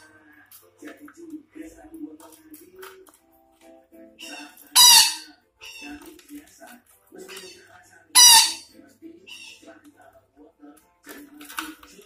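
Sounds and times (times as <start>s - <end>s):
parakeet chattering calls: 4.2s - 6.0s, 7.3s - 8.7s, 9.3s - 9.7s
parakeet screeching: 4.2s - 6.1s, 7.3s - 9.7s.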